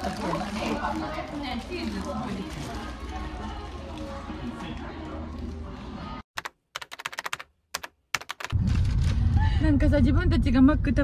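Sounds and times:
keyboard typing clicks: 6.4s - 8.6s.

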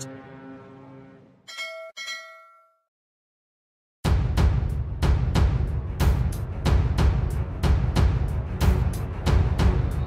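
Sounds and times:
notification bell ding: 1.5s - 2.8s.

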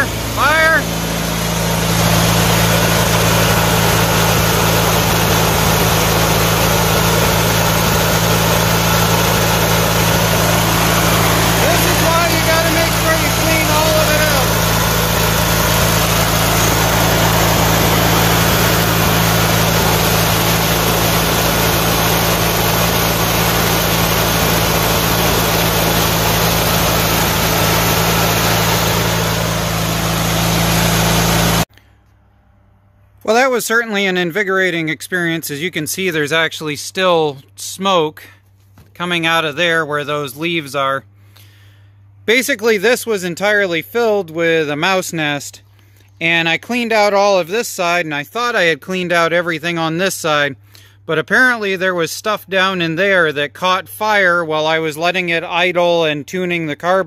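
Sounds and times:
lawn tractor engine idling: 0.0s - 32.0s.

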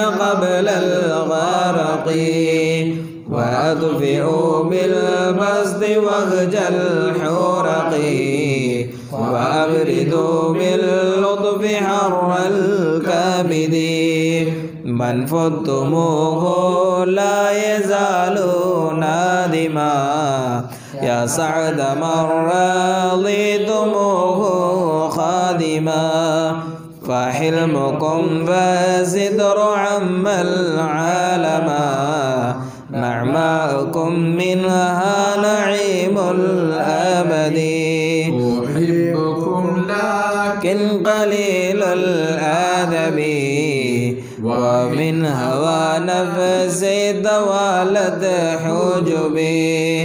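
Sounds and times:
unaccompanied devotional chanting: 0.0s - 50.0s
short breaths: 8.9s - 9.2s, 20.7s - 21.0s, 32.6s - 32.9s, 44.2s - 44.4s.

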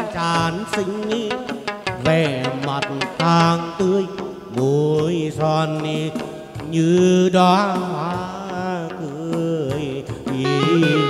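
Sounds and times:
plucked lute: 0.0s - 4.6s
sharp percussion clicks: 0.0s - 11.0s
man singing long wavering notes: 6.8s - 11.0s.

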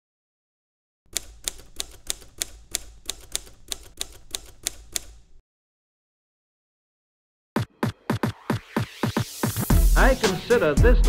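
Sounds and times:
typewriter keys striking: 1.1s - 5.4s.

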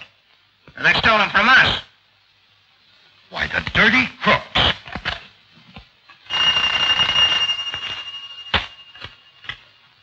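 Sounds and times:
electric telephone bell ringing: 6.3s - 9.5s.

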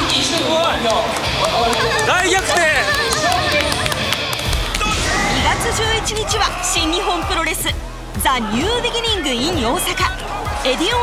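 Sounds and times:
hand claps: 0.0s - 4.8s
voices shouting and whooping: 1.3s - 4.2s, 4.8s - 11.0s.

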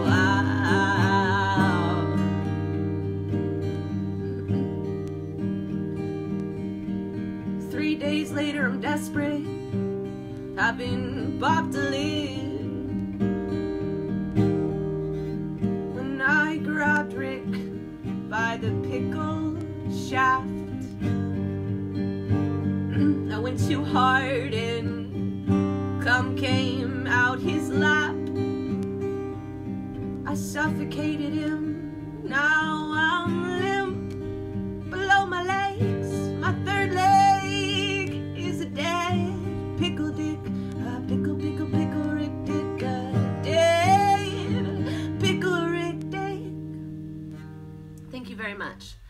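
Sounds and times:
woman singing with vibrato: 0.0s - 3.0s, 7.6s - 9.7s, 10.4s - 13.0s, 15.9s - 20.9s, 22.9s - 25.2s, 26.0s - 28.3s, 30.2s - 34.2s, 34.8s - 46.6s
acoustic guitar strumming: 0.0s - 49.0s.

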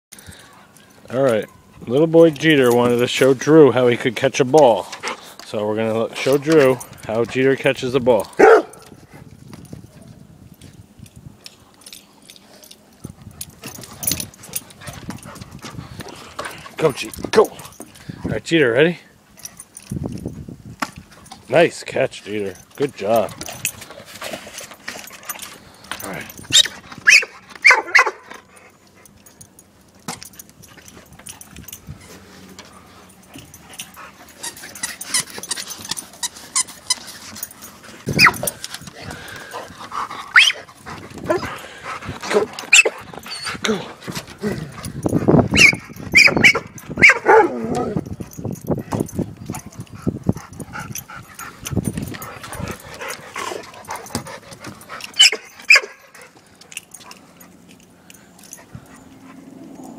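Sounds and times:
dog barking: 8.4s - 8.8s, 27.1s - 28.2s, 45.6s - 47.7s, 55.2s - 56.0s.

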